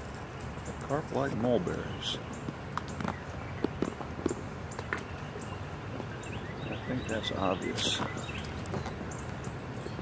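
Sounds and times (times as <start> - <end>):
low outdoor background: 0.0 - 10.0.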